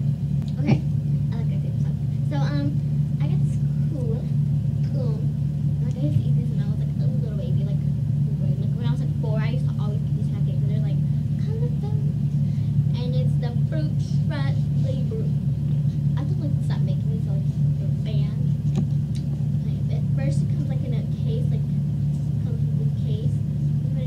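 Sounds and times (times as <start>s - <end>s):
steady low hum: 0.0s - 24.0s
girl's voice: 0.5s - 18.6s, 19.5s - 24.0s.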